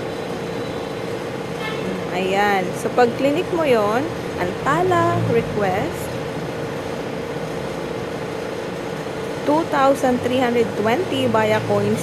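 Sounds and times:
background hum and hiss: 0.0 - 12.0
constant mid-pitched tone: 0.0 - 12.0.

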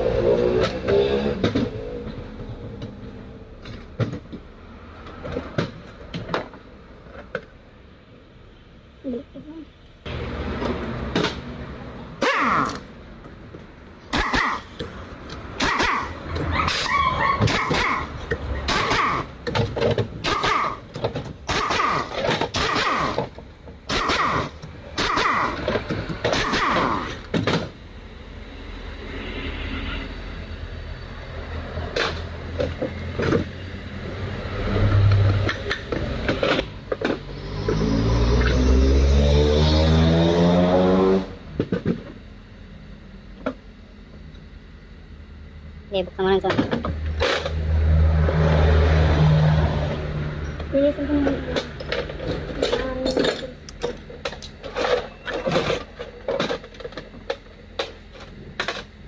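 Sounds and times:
engine revving up: 0.0 - 3.2, 28.5 - 31.9, 32.9 - 41.5, 47.1 - 52.7.

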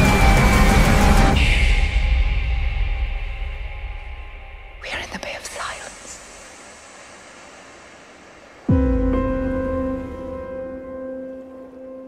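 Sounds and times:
faint steady hiss: 3.2 - 12.0
breathy whisper: 4.8 - 6.8.

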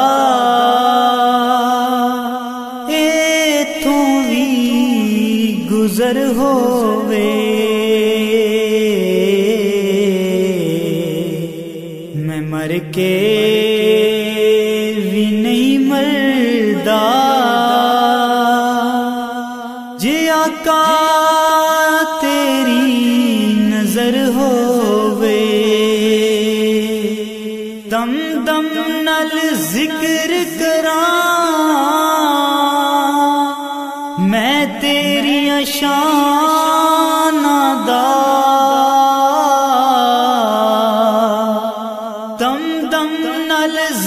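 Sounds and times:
chant-like humming vocal drone: 0.0 - 28.3
man singing unaccompanied: 0.0 - 44.0.

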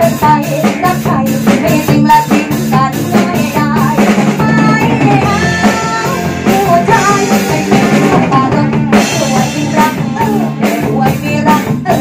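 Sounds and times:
drum kit: 0.0 - 12.0
electric bass: 0.0 - 12.0
woman singing into a microphone: 0.0 - 12.0.

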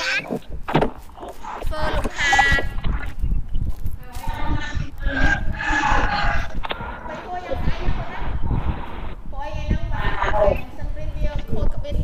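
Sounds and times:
low microphone rumble: 0.0 - 12.0.

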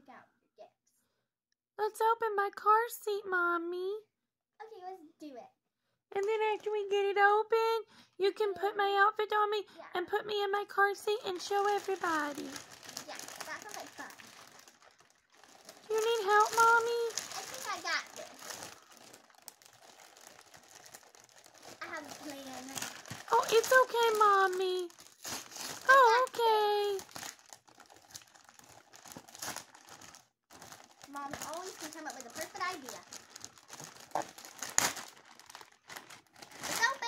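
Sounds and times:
plastic packaging crinkling: 11.1 - 37.0.

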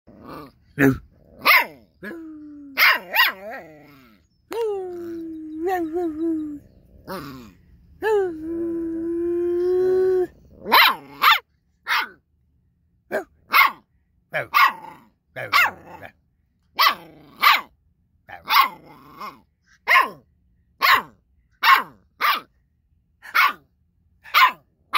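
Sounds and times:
puppy yapping: 1.4 - 1.8, 2.8 - 3.7, 10.6 - 12.2, 13.1 - 13.8, 14.4 - 15.8, 18.3 - 20.2, 20.8 - 22.5, 23.2 - 23.6, 24.2 - 24.6.

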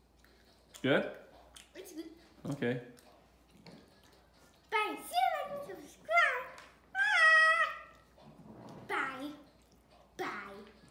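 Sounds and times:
child's high wordless vocal: 4.7 - 8.0.

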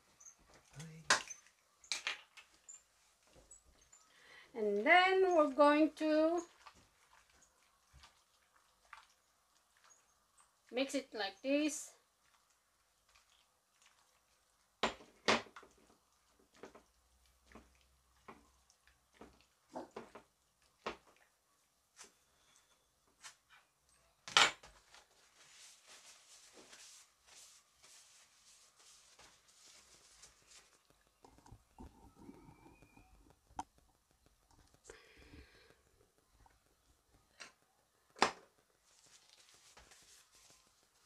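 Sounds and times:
beef mixed by hand: 4.7 - 23.9, 24.8 - 41.0
soft rustling: 24.7 - 37.2, 38.6 - 41.0.

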